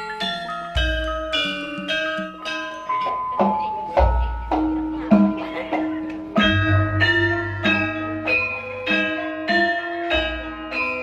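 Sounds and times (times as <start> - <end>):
metallophones and gongs struck: 0.2 - 11.0
low sustained tone: 6.4 - 10.7.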